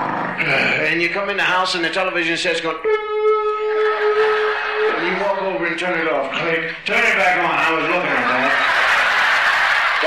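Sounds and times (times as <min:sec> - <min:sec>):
man humming steady high tone: 0:02.8 - 0:04.3.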